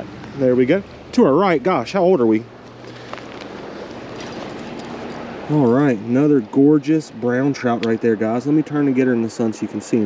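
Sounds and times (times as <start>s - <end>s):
creek water rushing: 0.0s - 10.0s.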